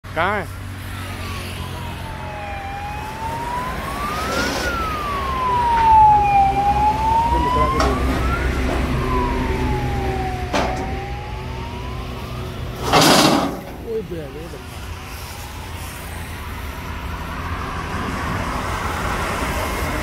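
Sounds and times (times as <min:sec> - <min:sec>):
emergency siren wailing: 0:00.3 - 0:20.0
low engine hum: 0:01.8 - 0:12.9.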